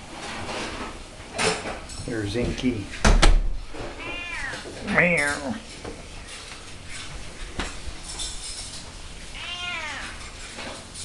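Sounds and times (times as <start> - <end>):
cat meowing: 4.0 - 4.7, 9.4 - 10.2.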